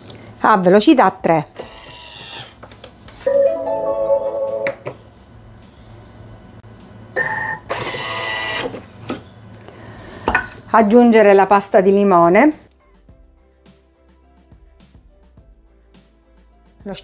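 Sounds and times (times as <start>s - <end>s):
food processor whine: 1.6s - 2.5s
food processor whir with high tone: 1.6s - 2.5s.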